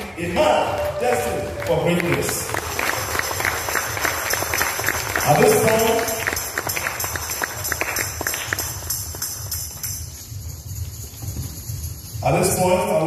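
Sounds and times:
audience clapping: 0.0s - 9.9s.

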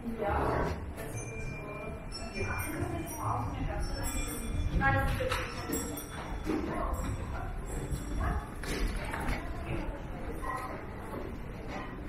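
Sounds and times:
low street hubbub: 0.0s - 12.0s.

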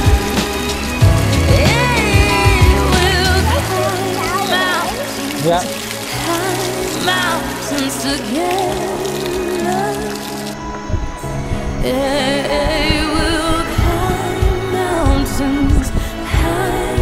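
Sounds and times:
song with singing voice: 0.0s - 17.0s.

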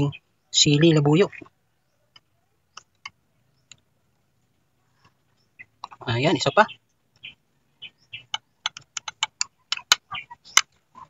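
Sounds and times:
clicks on ceramic: 8.2s - 10.7s.

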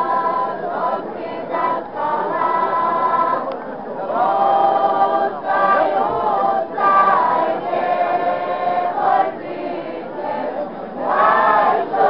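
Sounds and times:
choir singing without instruments: 0.0s - 12.0s.

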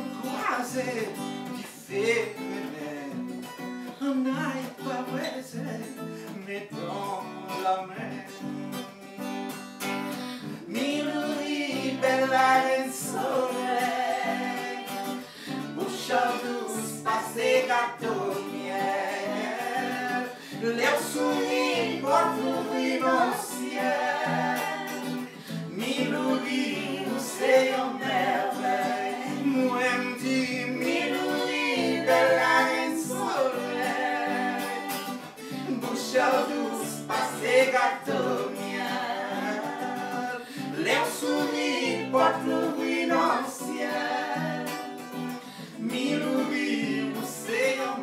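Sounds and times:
acoustic guitar playing: 0.0s - 48.0s
people singing along: 10.6s - 48.0s.

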